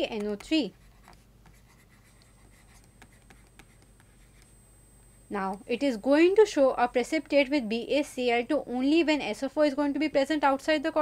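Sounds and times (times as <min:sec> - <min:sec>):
stylus tapping and scratching: 0:00.0 - 0:05.6.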